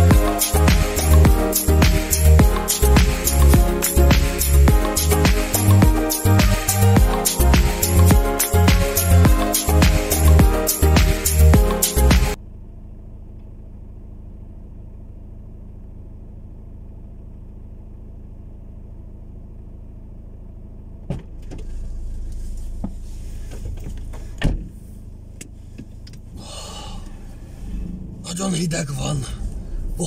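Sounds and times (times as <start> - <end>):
car engine idling: 0.0 - 30.0
rustling and knocks inside car: 21.0 - 26.4.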